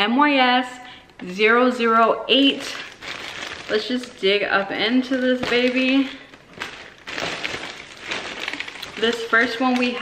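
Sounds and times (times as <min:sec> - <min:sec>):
plastic bag crinkling: 0:02.3 - 0:10.0.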